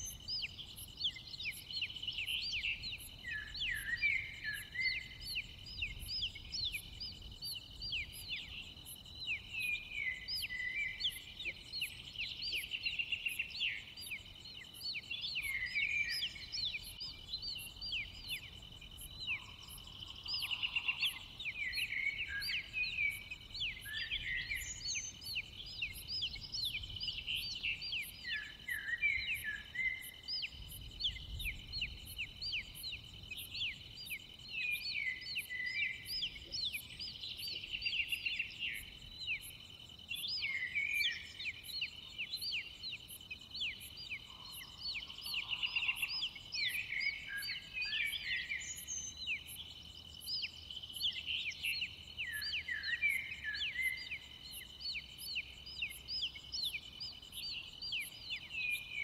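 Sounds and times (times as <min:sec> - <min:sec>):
birds chirping and singing: 0:00.0 - 0:59.0.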